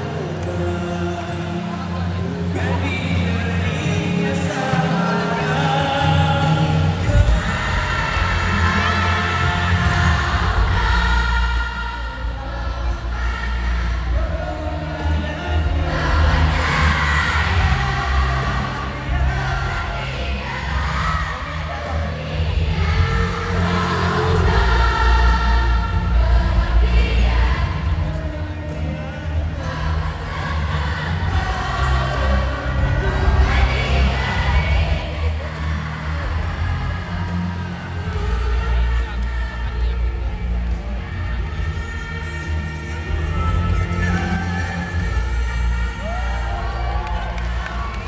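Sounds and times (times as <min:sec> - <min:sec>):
man singing into a microphone: 0:00.0 - 0:09.5
backing music with steady bass: 0:00.0 - 0:48.0
crowd noise: 0:00.0 - 0:48.0.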